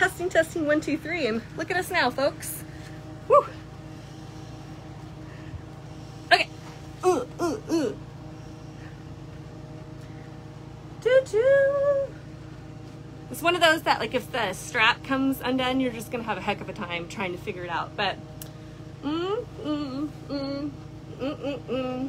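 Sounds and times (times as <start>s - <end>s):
steady low hum: 0.0s - 22.0s
woman vocal sounds: 3.2s - 3.7s, 6.3s - 8.0s, 11.0s - 12.3s, 19.0s - 22.0s
woman exclaiming woo: 3.3s - 3.6s.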